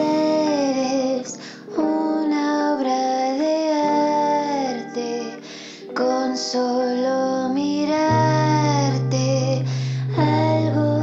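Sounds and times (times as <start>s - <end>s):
woman singing: 0.0s - 11.0s.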